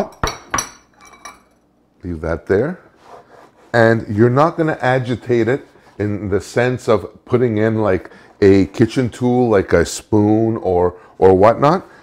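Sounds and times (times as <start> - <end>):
metal utensil clinking on ceramic bowl: 0.0 - 1.6.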